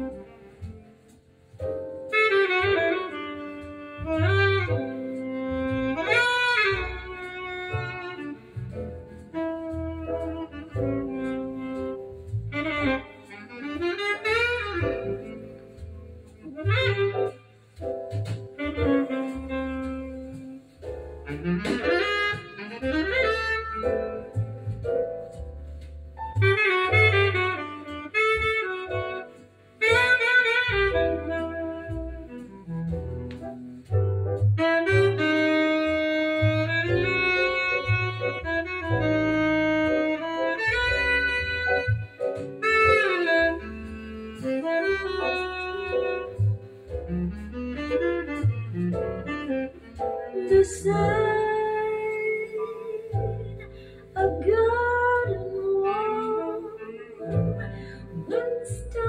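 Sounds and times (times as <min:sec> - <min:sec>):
jazz ballad from vinyl record: 0:00.0 - 0:59.0.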